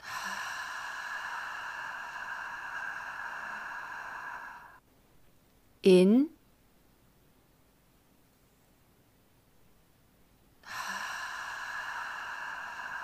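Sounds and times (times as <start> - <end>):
woman exhaling with a hiss: 0.0 - 4.8, 10.6 - 13.0
woman speaking: 5.8 - 6.4.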